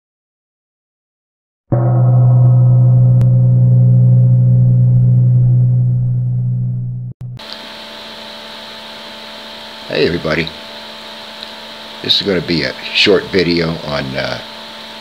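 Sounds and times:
deep held tone: 1.7 - 8.4
steady hum with hiss: 7.4 - 15.0.

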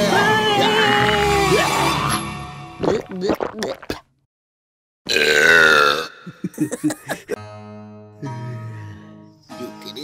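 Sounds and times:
loud cartoon burp: 5.1 - 6.5
giggling: 6.3 - 7.4.

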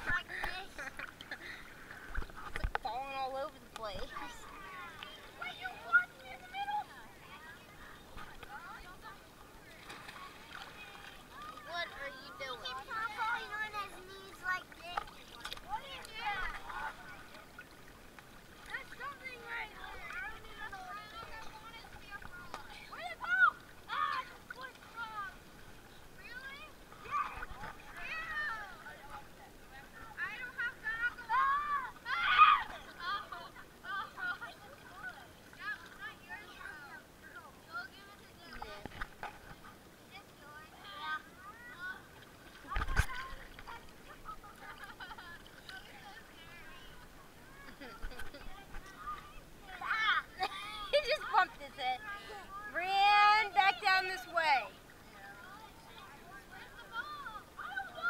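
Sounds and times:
water splashing: 0.0 - 58.0
children calling out and squealing: 18.6 - 25.5, 26.1 - 29.0, 30.0 - 37.1, 48.7 - 54.8, 55.4 - 58.0
children squealing: 32.1 - 32.7.

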